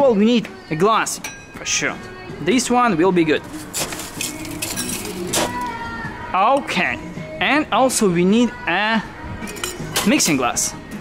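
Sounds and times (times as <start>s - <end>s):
ice cubes clinking in glass: 3.8s - 5.5s.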